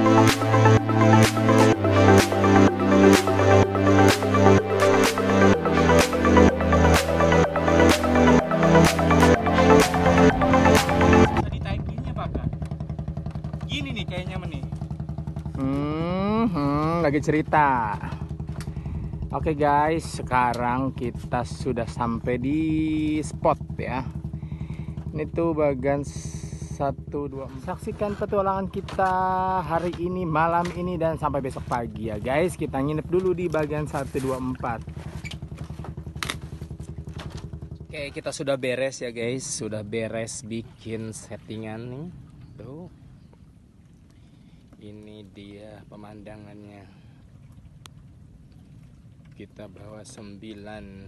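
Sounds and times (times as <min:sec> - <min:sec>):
boat engine idling: 0:00.0 - 0:51.0.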